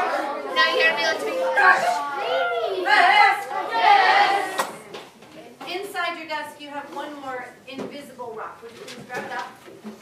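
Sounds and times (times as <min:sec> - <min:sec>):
children talking over one another: 0:00.0 - 0:04.9.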